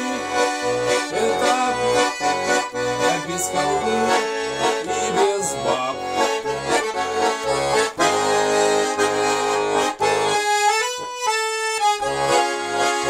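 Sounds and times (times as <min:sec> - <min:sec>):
button accordion melody: 0:00.0 - 0:13.0.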